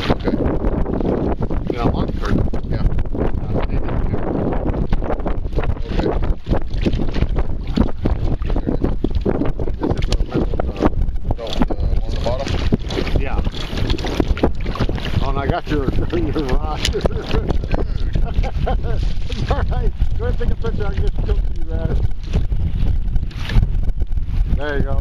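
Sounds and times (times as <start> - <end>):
water slapping against kayak: 0.0 - 25.0
wind buffeting microphone: 0.0 - 25.0.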